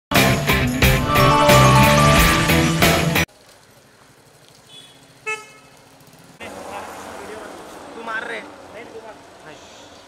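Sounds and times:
street noise: 0.1s - 10.0s
vehicle horn toot: 4.7s - 5.7s.

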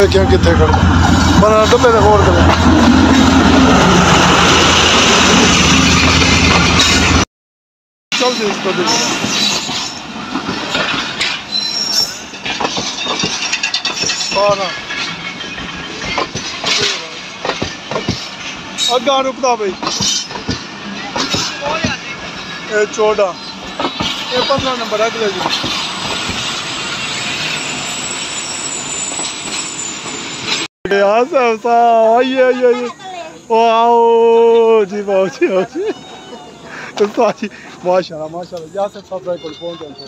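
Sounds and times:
train wheels rumbling on rails: 0.0s - 7.2s, 8.2s - 30.7s
high wheel squeal: 8.2s - 30.7s, 38.4s - 40.0s.

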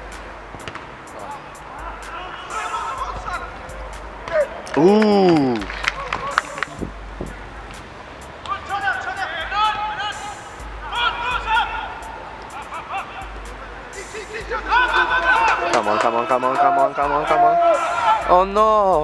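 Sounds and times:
football players shouting: 1.2s - 6.8s, 8.4s - 19.0s.

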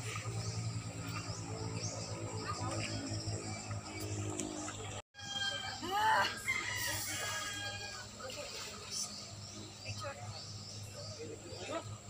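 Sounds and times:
rooster crowing: 5.2s - 8.1s.

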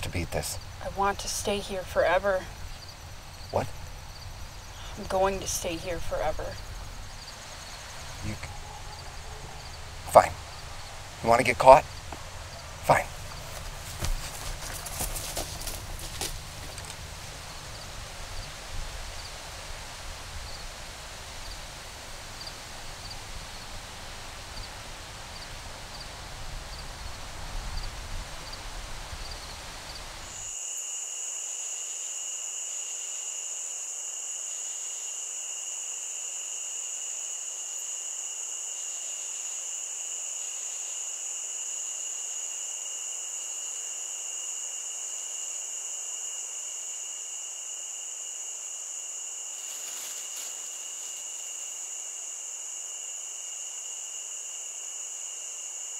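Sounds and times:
low wind rumble: 0.0s - 30.4s
faint insect chirp: 0.0s - 55.9s
shrill cricket chorus: 0.0s - 55.9s
rustling through dry plants: 12.0s - 19.6s, 49.5s - 51.9s.

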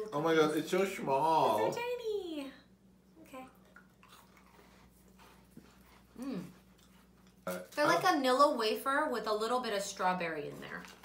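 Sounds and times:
low room hum: 0.0s - 11.0s
chewing crisp biscuits: 3.5s - 8.0s.

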